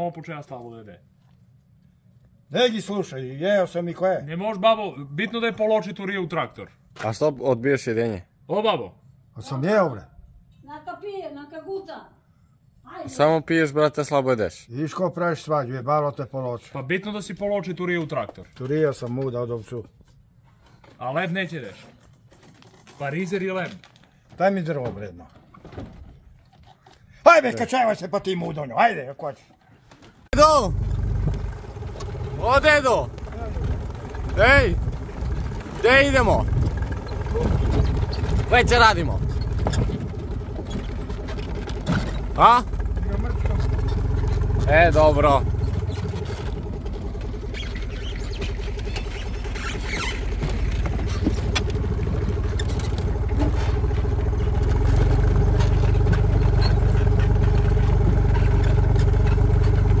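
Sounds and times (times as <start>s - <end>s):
tractor engine rumbling: 29.9s - 60.0s
man calling out: 30.3s - 30.9s, 32.3s - 34.9s, 35.7s - 36.6s, 38.4s - 39.3s.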